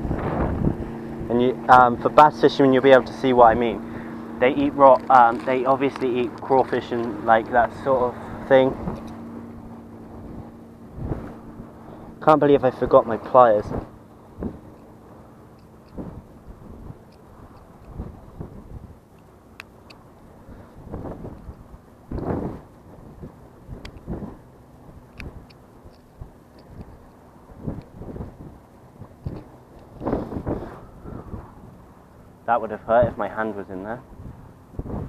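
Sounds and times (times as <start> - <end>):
wind rumbling on microphone: 0.0 - 35.0.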